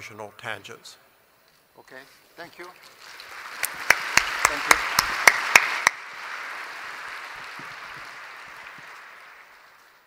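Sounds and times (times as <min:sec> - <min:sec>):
audience applause: 0:02.6 - 0:10.0.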